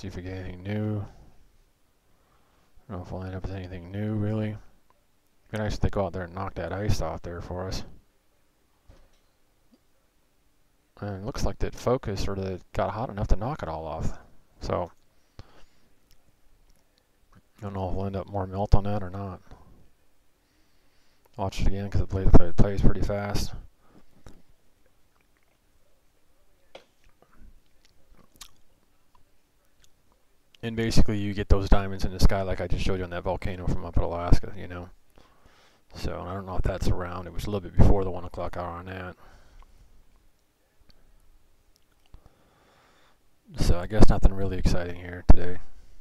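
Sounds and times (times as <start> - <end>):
faint low hum: 0.0 - 46.0
faint clicks: 14.8 - 17.6.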